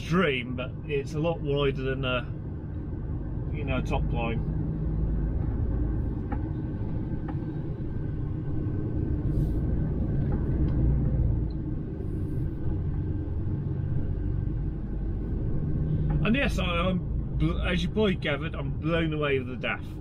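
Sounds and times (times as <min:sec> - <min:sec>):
truck engine and road rumble: 0:00.0 - 0:20.0.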